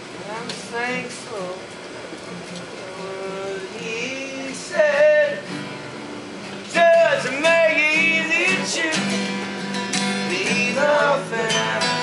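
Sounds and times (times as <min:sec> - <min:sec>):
acoustic guitar notes: 0:00.0 - 0:12.0
crowd talking: 0:08.0 - 0:12.0.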